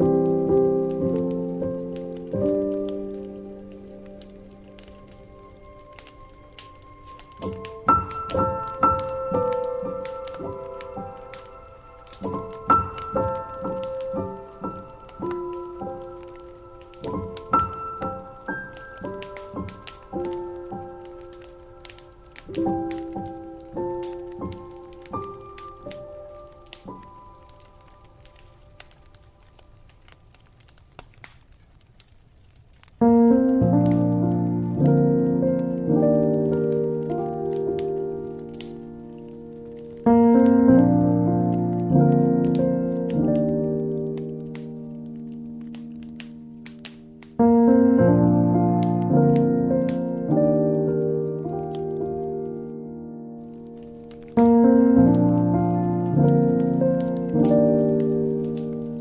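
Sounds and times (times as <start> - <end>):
slow solo piano: 0.0 - 30.1, 32.9 - 59.0
faint clicks and crackle: 0.0 - 59.0.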